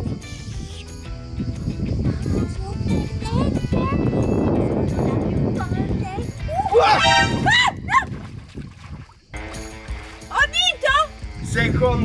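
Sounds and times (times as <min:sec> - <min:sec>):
background music: 0:00.0 - 0:07.8, 0:09.4 - 0:12.0
excited voice exclamations: 0:06.6 - 0:08.0.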